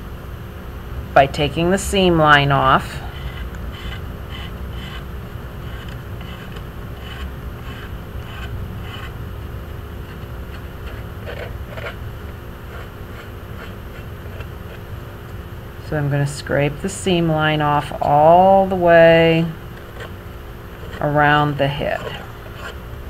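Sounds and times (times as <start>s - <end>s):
low rumble and hum: 0.0s - 23.0s
knife blade scraping clay: 2.8s - 9.2s, 10.0s - 15.2s, 20.8s - 22.8s.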